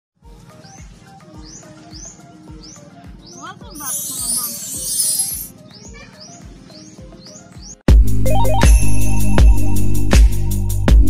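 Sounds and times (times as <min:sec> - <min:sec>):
short rising chirp: 0:03.8 - 0:05.5
soft electronic beat: 0:07.9 - 0:11.0.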